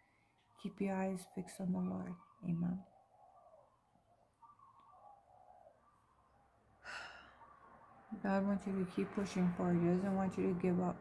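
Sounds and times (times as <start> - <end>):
woman breathing: 6.8 - 7.5.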